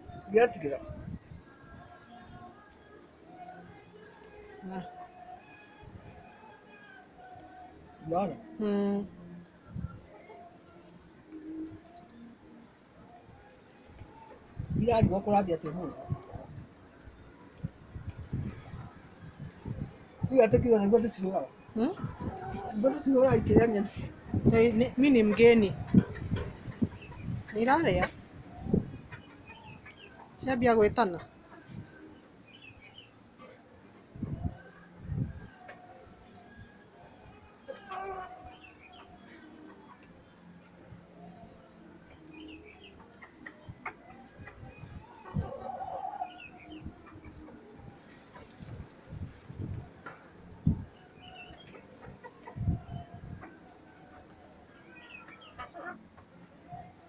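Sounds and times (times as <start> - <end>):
chicken clucking: 21.8 - 57.0.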